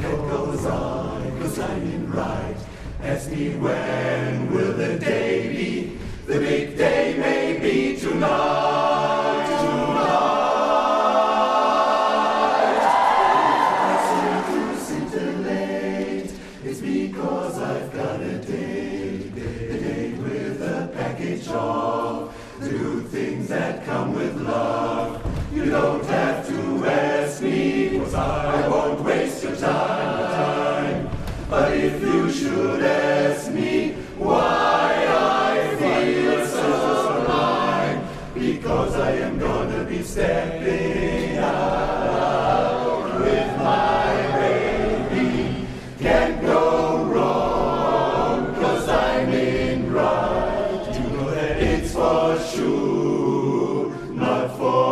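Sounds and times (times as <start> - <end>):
men's chorus singing a cappella: 0.0 - 54.9.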